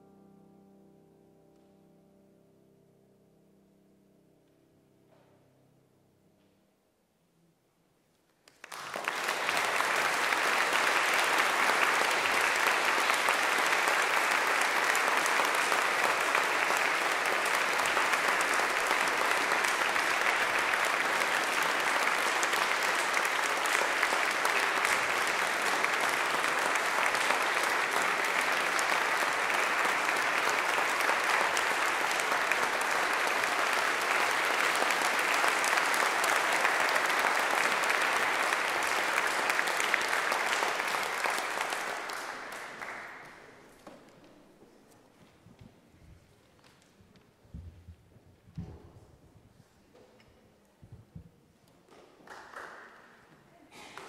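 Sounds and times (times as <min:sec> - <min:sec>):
audience applauding: 0:08.4 - 0:44.5, 0:51.8 - 0:54.0.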